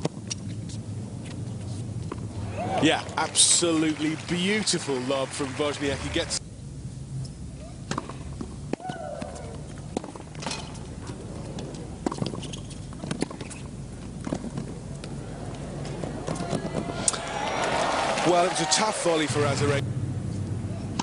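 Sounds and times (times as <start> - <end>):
low background noise: 0.0 - 21.0
tennis ball struck by rackets: 7.9 - 10.8.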